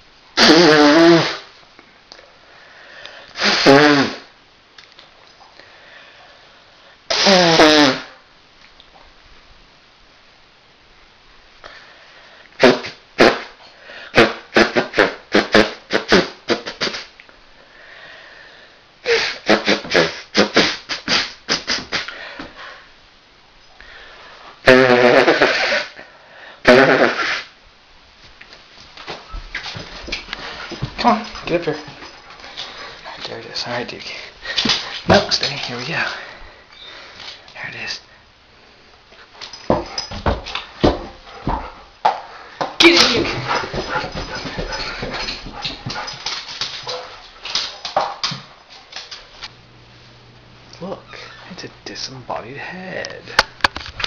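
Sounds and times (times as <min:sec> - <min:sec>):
man blowing his nose: 0:00.4 - 0:01.5, 0:03.3 - 0:04.3, 0:07.1 - 0:08.2, 0:12.6 - 0:17.1, 0:19.0 - 0:22.5, 0:24.6 - 0:27.6.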